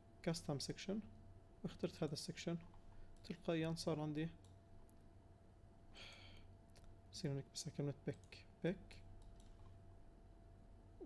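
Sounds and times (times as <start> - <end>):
soft breath: 5.9 - 6.6
computer mouse clicks: 9.2 - 9.8.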